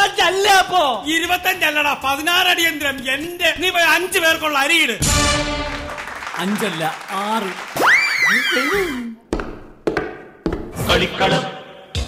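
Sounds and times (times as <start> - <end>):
voice: 0.0 - 5.0, 8.3 - 9.2
sharp knocks: 9.3 - 10.7.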